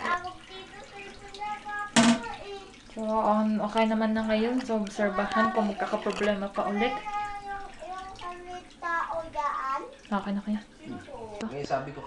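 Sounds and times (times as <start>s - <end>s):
water refilling toilet cistern: 0.0s - 12.0s
toilet lid clacking shut: 2.0s - 2.3s.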